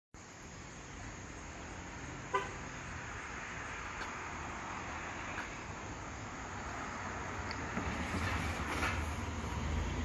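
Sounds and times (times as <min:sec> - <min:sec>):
street background noise: 0:00.2 - 0:10.0
car horn toot: 0:02.3 - 0:02.6.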